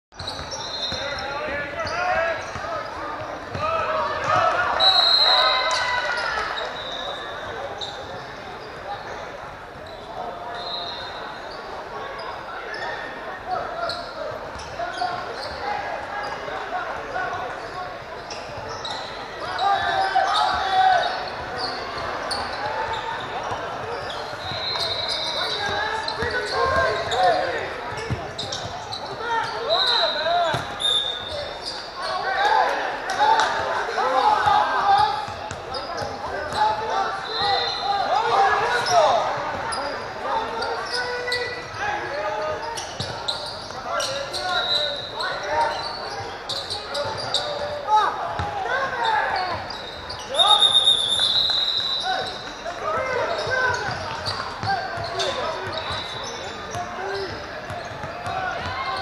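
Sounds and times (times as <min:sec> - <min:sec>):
players and spectators calling out: 0:00.2 - 0:59.0.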